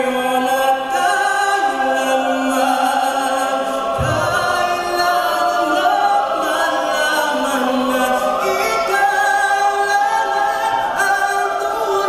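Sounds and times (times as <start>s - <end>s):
mixed choir singing: 0.0s - 12.0s.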